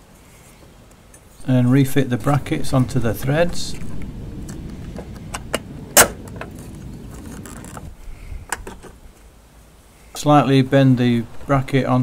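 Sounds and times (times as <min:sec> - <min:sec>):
low rumble: 0:01.4 - 0:08.5.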